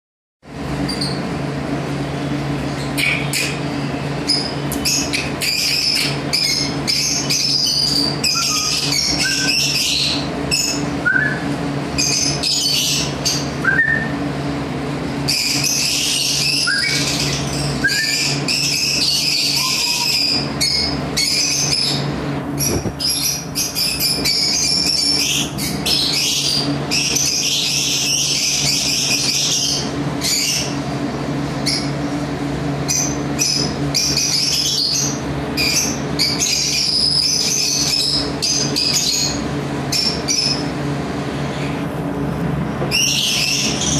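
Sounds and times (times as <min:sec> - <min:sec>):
steady low hum: 0:00.4 - 0:43.9
small birds chirping: 0:02.0 - 0:14.2, 0:15.2 - 0:30.9, 0:31.6 - 0:32.0, 0:32.8 - 0:41.9, 0:42.9 - 0:43.9.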